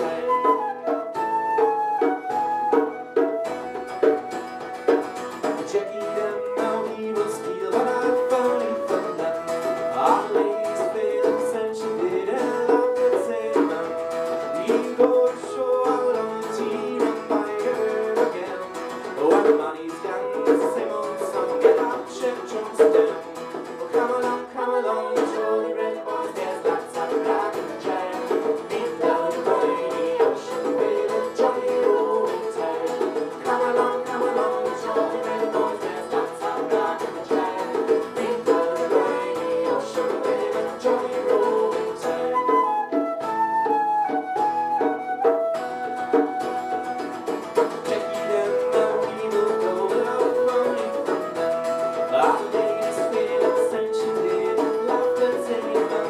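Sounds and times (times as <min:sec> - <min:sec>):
flute melody: 0:00.0 - 0:56.0
strummed acoustic guitar: 0:00.0 - 0:56.0.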